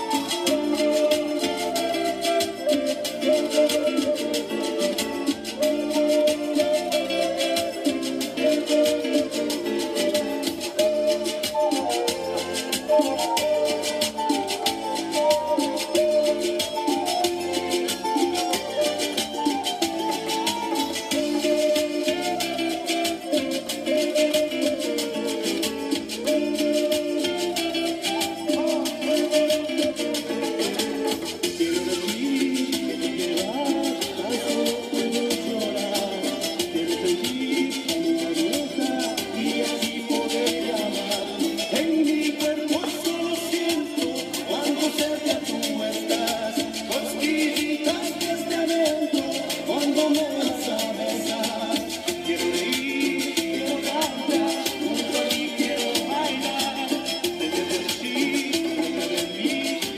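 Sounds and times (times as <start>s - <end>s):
amplified backing music with beat: 0.0s - 59.9s
shaker rhythm: 0.0s - 59.9s
wooden flute melody: 0.0s - 59.9s.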